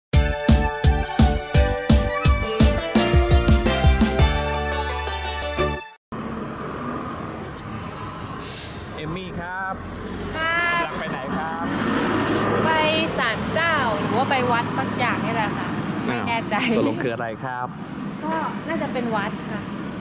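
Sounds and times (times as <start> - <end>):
city street traffic: 6.1 - 20.0
short hiss: 8.3 - 8.9
people talking: 9.0 - 9.8, 10.4 - 11.7, 12.6 - 19.7.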